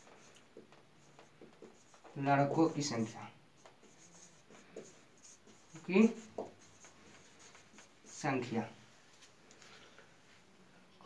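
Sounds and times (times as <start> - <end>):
marker scraping on whiteboard: 0.0 - 8.5.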